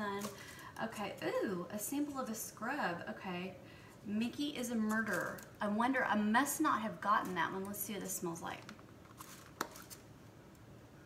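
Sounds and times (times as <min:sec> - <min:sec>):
plastic rustle: 0:00.0 - 0:01.2, 0:09.0 - 0:10.1.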